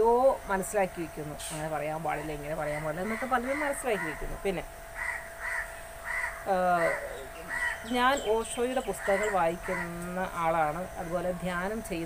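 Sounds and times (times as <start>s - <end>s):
woman speaking: 0.0s - 4.7s, 6.5s - 7.2s, 7.8s - 12.0s
bird harsh calls: 2.1s - 10.6s.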